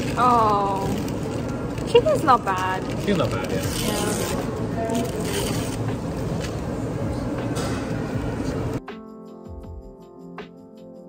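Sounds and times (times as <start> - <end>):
busy restaurant noise: 0.0 - 8.8.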